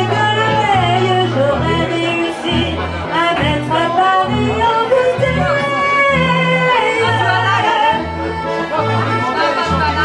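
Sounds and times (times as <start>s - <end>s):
woman singing into microphone: 0.0s - 8.2s
accordion melody: 0.0s - 10.0s
plucked double bass: 0.0s - 10.0s.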